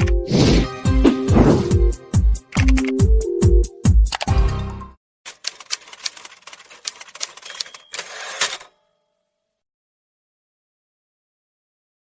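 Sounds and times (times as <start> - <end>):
typewriter key strikes: 5.3 - 8.7
typewriter carriage return rasp: 5.3 - 8.8
typewriter bell ding: 6.9 - 9.3.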